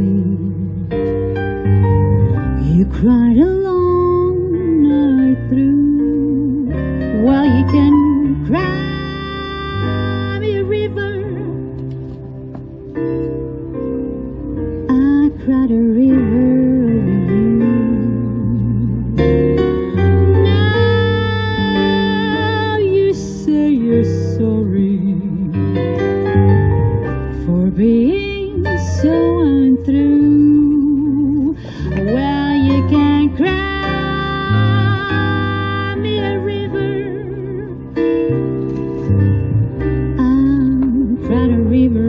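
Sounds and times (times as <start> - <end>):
woman singing jazz ballad: 0.0 - 1.3, 2.5 - 11.8, 14.7 - 25.8, 27.2 - 38.3, 40.0 - 42.0
piano: 0.0 - 42.0
plucked double bass: 0.0 - 42.0.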